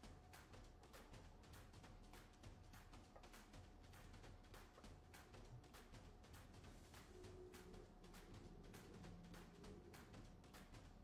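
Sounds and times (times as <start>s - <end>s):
faint background music with beats: 0.0s - 11.0s.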